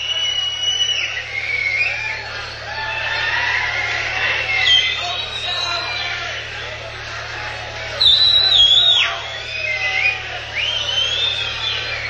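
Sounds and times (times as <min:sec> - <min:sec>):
person whistling loudly: 0:00.0 - 0:02.5, 0:08.0 - 0:12.0
concert crowd noise: 0:00.0 - 0:12.0.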